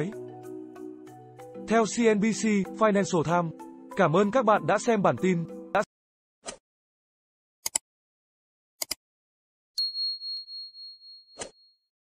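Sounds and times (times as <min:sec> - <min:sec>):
high bell ding: 0:09.8 - 0:11.8.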